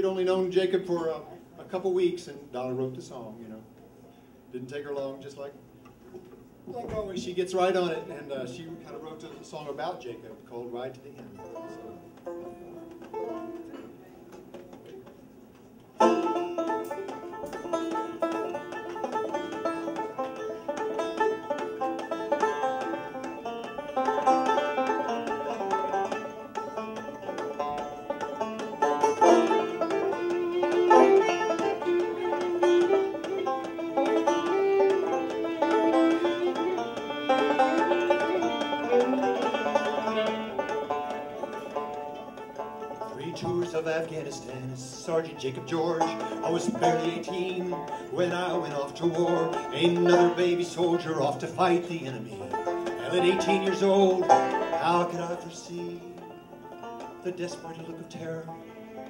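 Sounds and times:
banjo picking: 0:06.8 - 0:59.0
bowed fiddle melody: 0:16.0 - 0:59.0.

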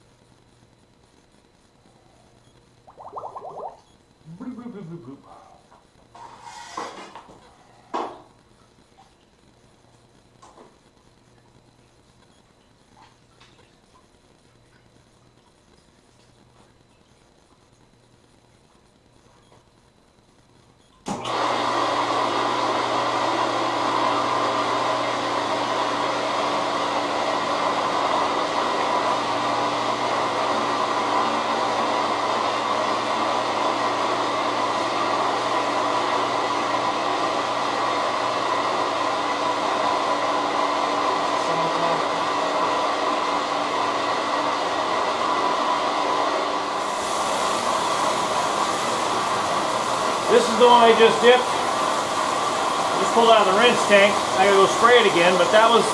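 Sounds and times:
bright hiss: 0:46.7 - 0:55.9.

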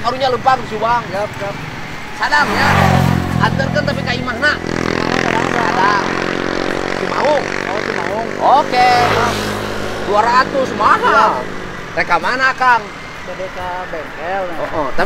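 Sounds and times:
men talking: 0:00.0 - 0:15.0
vehicle engine running: 0:02.3 - 0:12.8.

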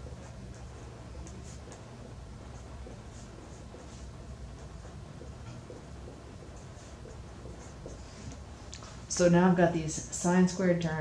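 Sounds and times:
marker pen scratching on paper: 0:00.0 - 0:08.7
low room hum: 0:00.0 - 0:11.0.

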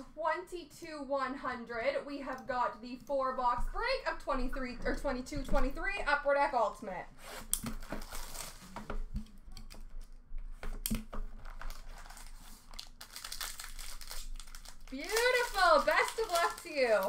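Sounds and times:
plastic shrink-wrap tearing and crinkling: 0:07.4 - 0:08.8, 0:11.4 - 0:17.0.

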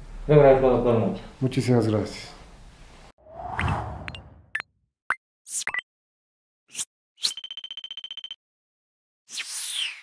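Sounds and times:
rapid high beeps: 0:07.2 - 0:08.4.

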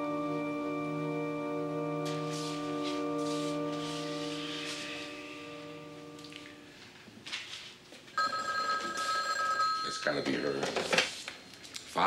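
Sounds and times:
held orchestral chord: 0:00.0 - 0:06.8
telephone ringing: 0:08.2 - 0:10.9.

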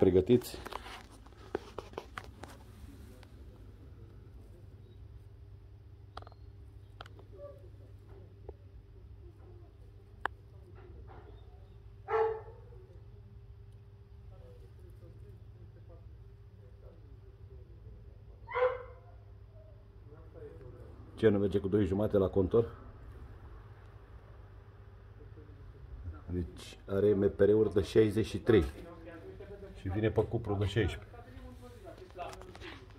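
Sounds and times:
steady low hum: 0:00.0 - 0:32.9
dog barking: 0:12.0 - 0:12.8, 0:18.5 - 0:19.2.

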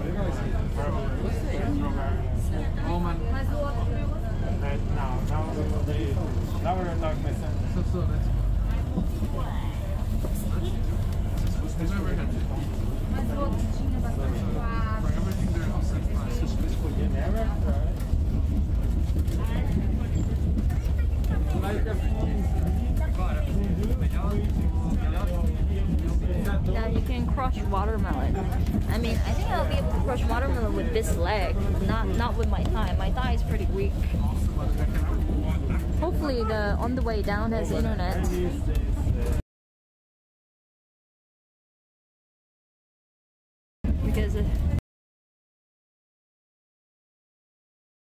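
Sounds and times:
people talking: 0:00.0 - 0:08.2, 0:08.8 - 0:39.4, 0:44.0 - 0:44.8
bus engine rumble: 0:00.0 - 0:39.4, 0:43.9 - 0:44.8.

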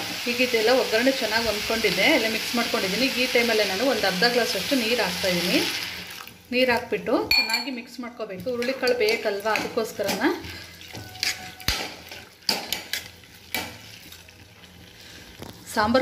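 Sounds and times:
faint frying sizzle: 0:00.0 - 0:07.2, 0:07.8 - 0:16.0
spoon scraping metal pot: 0:10.9 - 0:13.7.

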